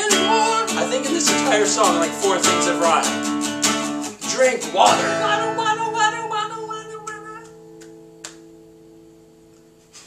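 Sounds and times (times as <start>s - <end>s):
acoustic guitar chord ringing: 0.0s - 9.9s.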